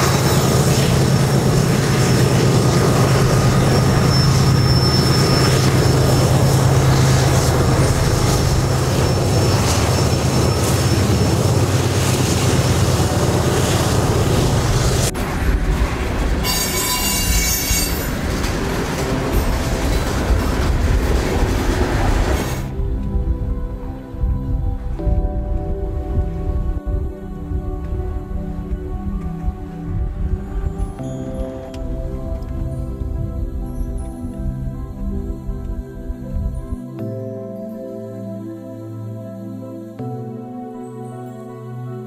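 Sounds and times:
train wheel squeal: 0:00.0 - 0:15.1, 0:16.4 - 0:22.7
train wheels on rails: 0:00.0 - 0:23.2
diesel locomotive drone: 0:00.0 - 0:42.0.

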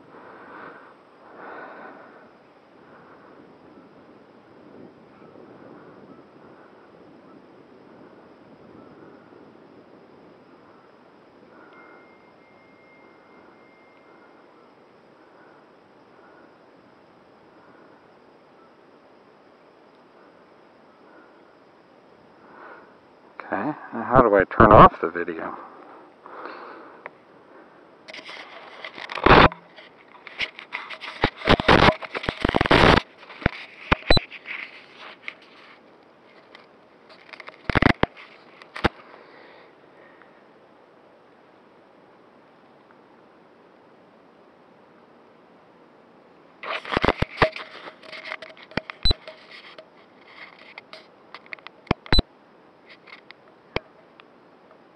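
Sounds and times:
camera handling scraping: 0:28.1 - 0:39.0, 0:46.6 - 0:52.2.

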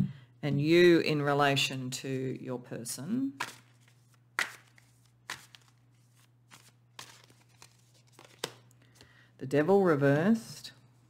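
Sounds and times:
card snaps and taps: 0:03.4 - 0:05.7, 0:06.5 - 0:09.1.

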